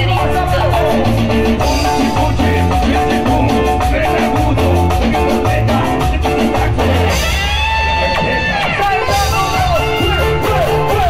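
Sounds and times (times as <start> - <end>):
live band playing dance music: 0.0 - 11.0.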